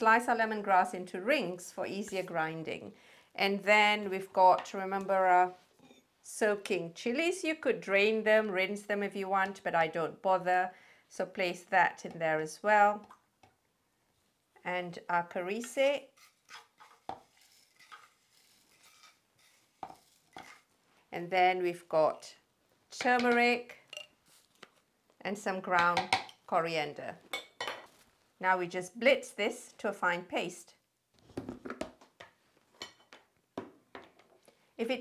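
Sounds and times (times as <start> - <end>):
spoon scraping a frying pan: 15.6 - 20.7.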